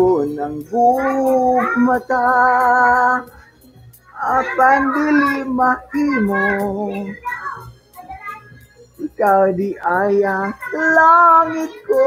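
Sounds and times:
person singing a cappella: 0.0s - 3.5s, 4.2s - 7.2s, 9.0s - 12.0s.

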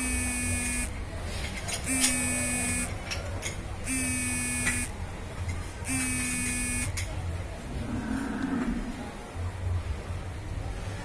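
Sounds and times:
electronic buzzer beeping: 0.0s - 1.0s, 1.8s - 3.0s, 3.8s - 5.0s, 5.9s - 7.0s.

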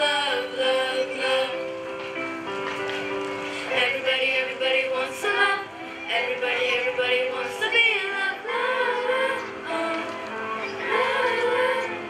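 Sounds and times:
children's choir singing: 0.0s - 1.9s, 3.6s - 12.0s.

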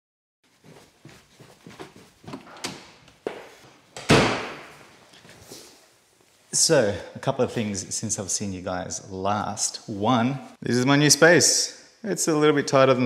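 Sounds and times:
knocks and rustling handling: 0.5s - 6.5s
loud thump: 4.1s - 4.8s.

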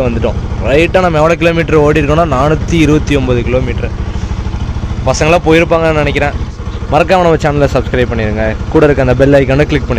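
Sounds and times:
man talking: 0.0s - 4.1s, 5.0s - 9.9s
motorcycle engine idling: 0.0s - 9.9s.

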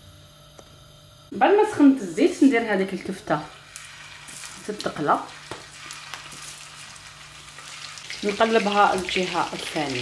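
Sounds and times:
meat sizzling in hot oil: 3.0s - 10.0s.

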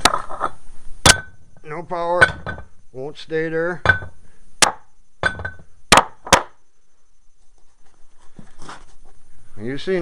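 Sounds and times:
metal weight knocking on iron pole: 3.8s - 4.2s, 5.2s - 6.5s.

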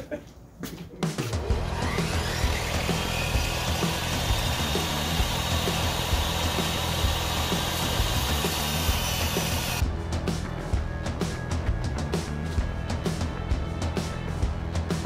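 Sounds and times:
table saw ripping wood: 1.5s - 9.8s.

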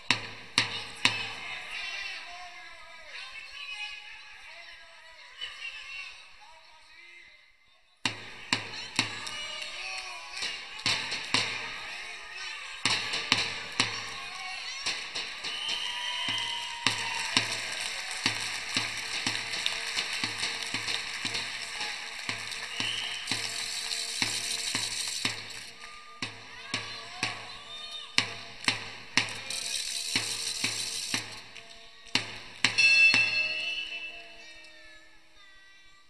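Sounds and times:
drum beaten steadily: 0.0s - 1.5s, 8.1s - 31.6s, 32.2s - 33.9s
crowd noise: 0.0s - 6.8s, 8.2s - 35.9s.

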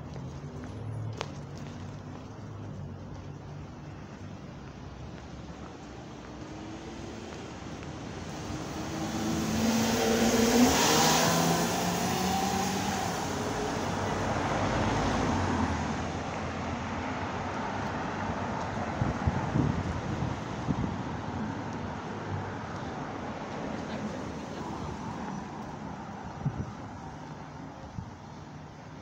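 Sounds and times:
road traffic noise: 0.0s - 29.0s
motor vehicle passing: 6.0s - 17.5s.

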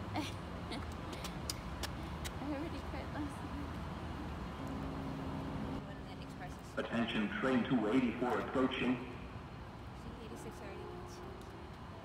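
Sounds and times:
steady low rumble: 0.7s - 9.9s.

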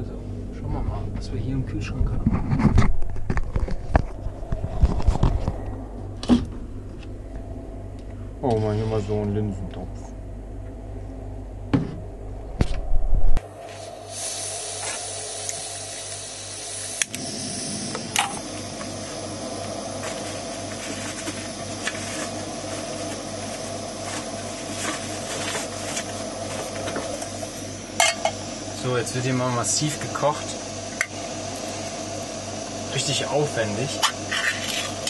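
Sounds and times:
camping stove hissing: 13.4s - 35.0s
burner igniter clicks: 17.0s - 17.2s.

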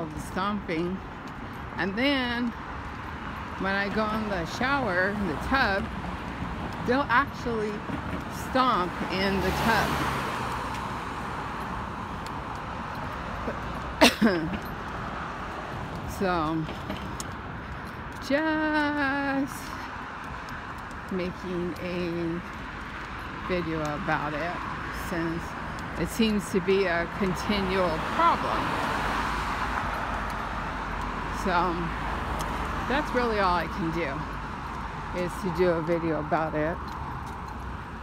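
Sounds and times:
cars driving by: 0.0s - 38.0s
road traffic rumble: 0.0s - 38.0s
faint ticks: 32.3s - 32.6s.

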